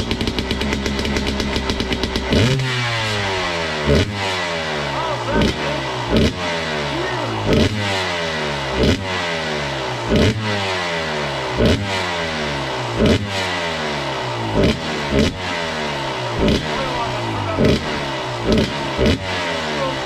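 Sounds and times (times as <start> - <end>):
dirt bike engine revving: 0.0 - 20.0.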